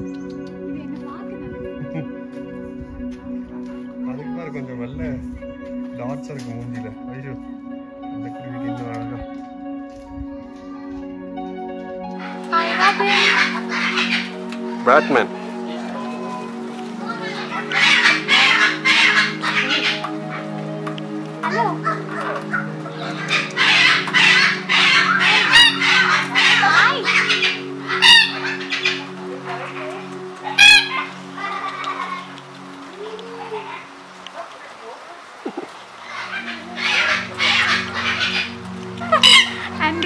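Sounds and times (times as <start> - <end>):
background music: 0.0 - 34.7, 35.4 - 40.0
cockatoo calling: 12.1 - 40.0.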